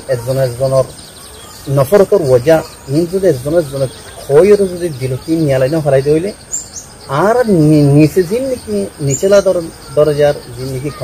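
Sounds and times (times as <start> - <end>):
man speaking: 0.0 - 1.0, 1.6 - 11.0.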